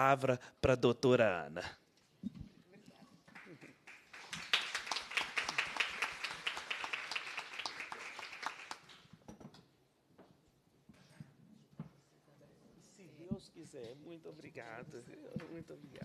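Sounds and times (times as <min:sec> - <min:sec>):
audience applauding: 0:03.3 - 0:09.1.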